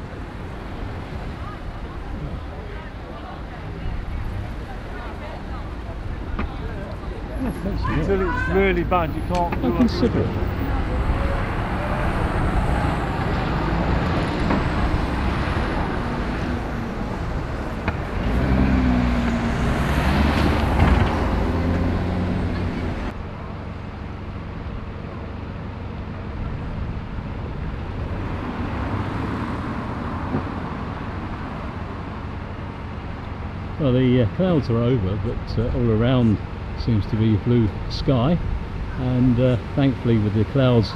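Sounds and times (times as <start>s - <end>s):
bus idling: 0.0s - 29.0s, 29.6s - 40.9s
bus driving past: 0.0s - 40.9s.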